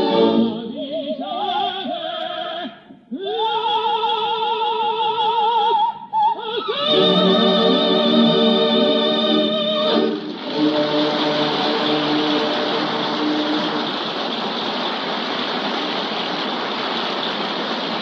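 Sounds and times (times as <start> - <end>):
held orchestral chord: 6.8 - 14.0
audience applauding: 6.8 - 18.0.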